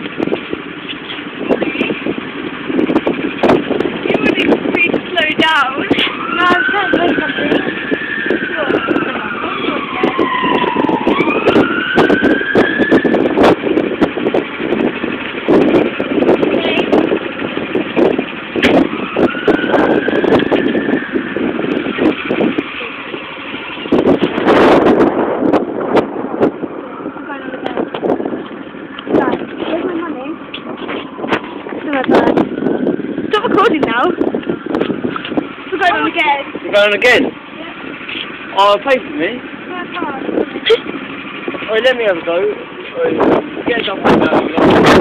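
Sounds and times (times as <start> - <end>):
go-kart engines revving: 0.0 - 45.0
steady rough din: 0.0 - 45.0.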